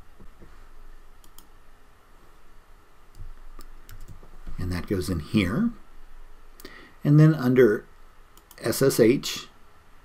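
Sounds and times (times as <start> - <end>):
faint low room hum: 0.0 - 10.0
computer mouse clicking: 1.2 - 1.5, 3.1 - 4.3, 8.4 - 8.7.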